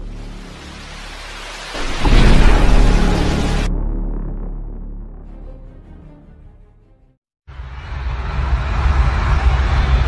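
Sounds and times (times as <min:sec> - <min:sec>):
rushing noise: 0:00.0 - 0:03.8
deep boom: 0:01.8 - 0:05.3.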